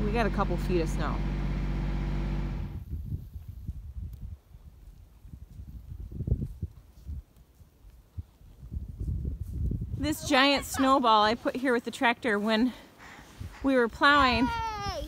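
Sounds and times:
steady engine hum: 0:00.0 - 0:02.8
wind buffeting microphone: 0:02.6 - 0:11.6, 0:13.0 - 0:15.0.

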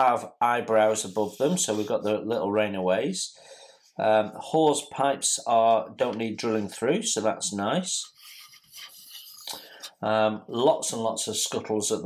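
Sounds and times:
plastic part rubbing and scraping: 0:08.0 - 0:10.0.

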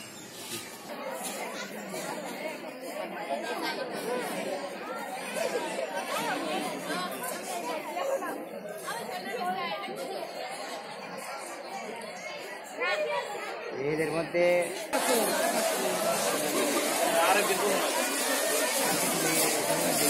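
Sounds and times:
babble of girls talking: 0:00.9 - 0:13.9.

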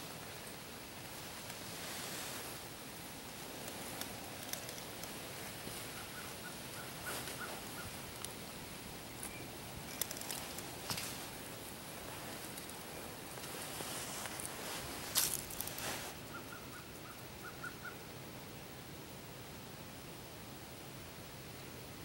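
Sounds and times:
rustling in dry leaves: 0:00.0 - 0:16.8
low steady hiss: 0:00.0 - 0:22.0.

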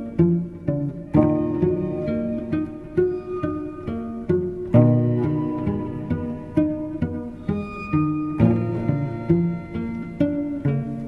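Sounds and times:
low plucked string notes: 0:00.0 - 0:11.0.

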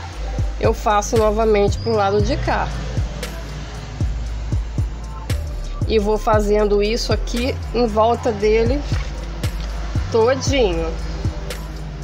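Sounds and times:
steady low hum: 0:00.0 - 0:12.0
deep bass drum hits: 0:04.0 - 0:07.3.

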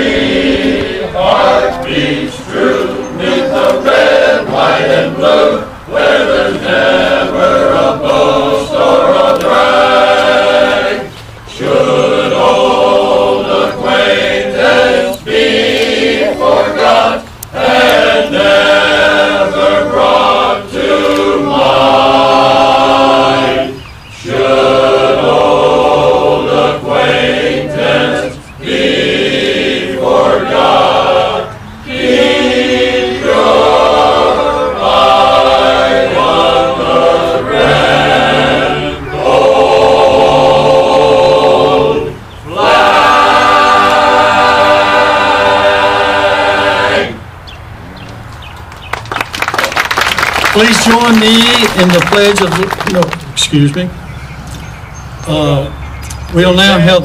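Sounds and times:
men's choir singing in harmony: 0:00.0 - 0:47.4.

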